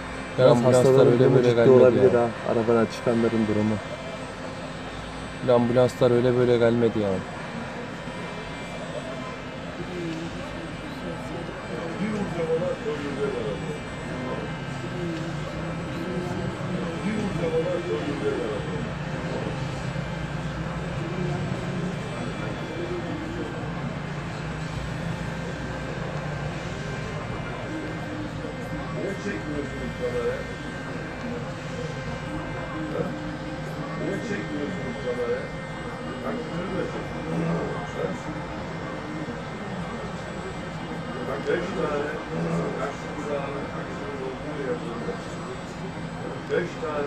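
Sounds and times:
fire engine running: 0.0 - 47.0
people talking indistinctly: 0.0 - 47.0.

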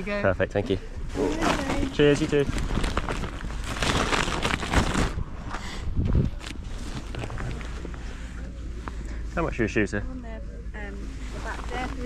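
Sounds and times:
nylon bag rustling: 1.1 - 5.4, 6.2 - 7.7, 11.2 - 12.0.

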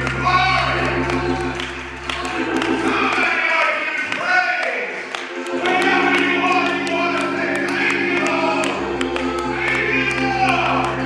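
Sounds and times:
gospel singing: 0.0 - 11.0
sustained keyboard chords: 0.0 - 11.0
deep bass note: 5.6 - 11.0.

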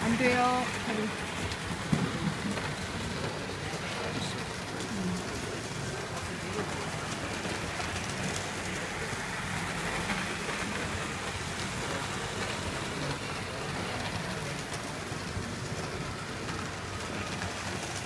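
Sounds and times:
model train motor whirring: 0.0 - 18.0.

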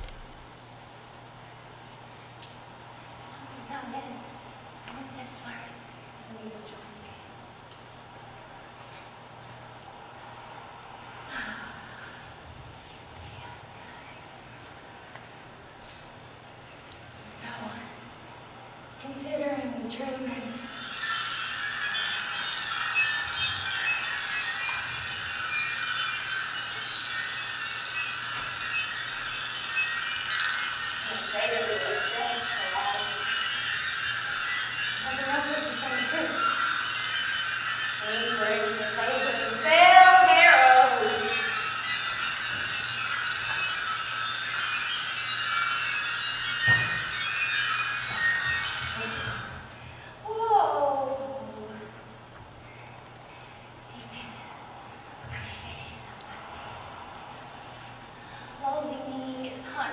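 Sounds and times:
high tinkling chimes: 0.0 - 13.6, 14.2 - 52.0, 52.6 - 59.9.

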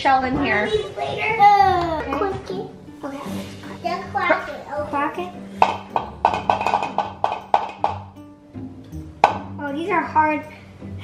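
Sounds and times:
egg tapping on bowl rim: 5.6 - 8.2.

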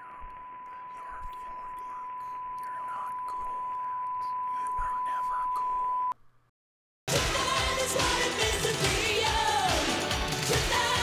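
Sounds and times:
steady electronic beep tone: 0.0 - 6.2.

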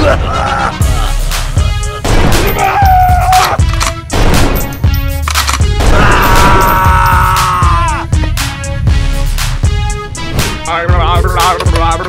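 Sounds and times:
background music: 0.0 - 12.0
gunshot sound effects: 2.0 - 2.6, 5.8 - 6.5.

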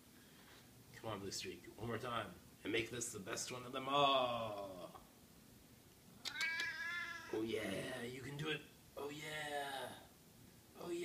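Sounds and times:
cat meowing: 6.2 - 7.5.

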